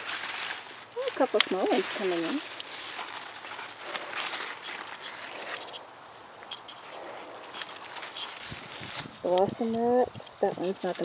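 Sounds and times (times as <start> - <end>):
leaves rustling: 0.0 - 11.0.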